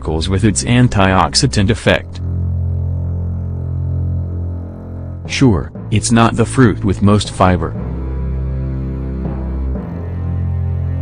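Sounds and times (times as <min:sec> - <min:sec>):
sustained low bass note: 0:00.0 - 0:11.0.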